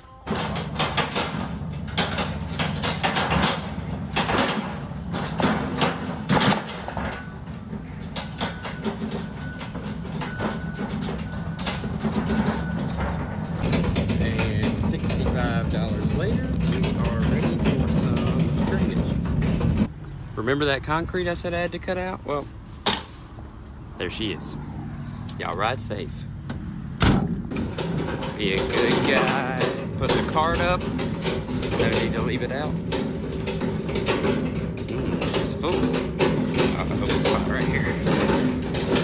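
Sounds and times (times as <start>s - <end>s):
cart wheels rumbling: 0.2s - 19.9s, 27.4s - 39.0s
rattling clicks and knocks: 0.3s - 19.9s, 26.4s - 39.0s.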